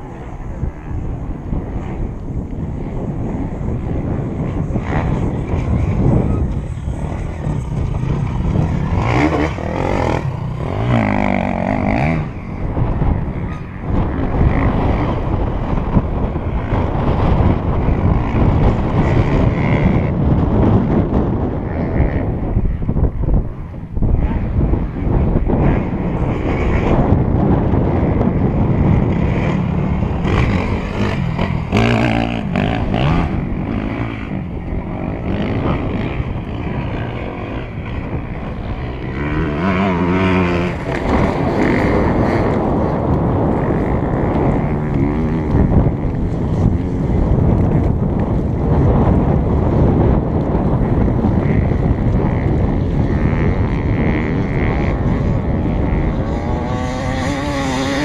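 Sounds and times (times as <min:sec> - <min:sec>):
motorcycle engines revving: 0:00.0 - 0:58.0
wind buffeting microphone: 0:00.0 - 0:58.0.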